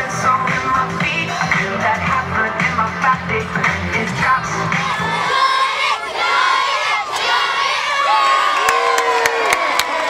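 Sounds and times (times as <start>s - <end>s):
crowd cheering and shouting: 0.1s - 10.0s
people clapping: 8.2s - 10.0s.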